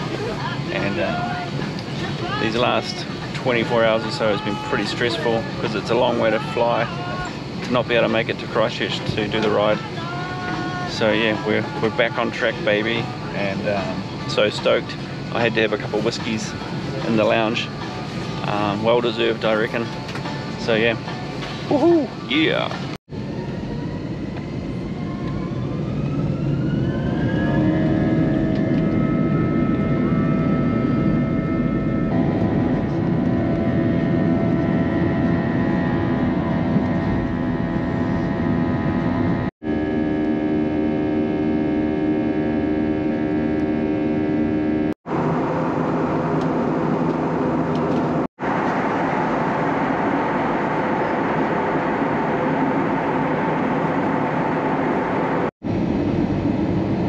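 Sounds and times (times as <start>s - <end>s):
jet engines whining from cabin: 0.0s - 57.0s.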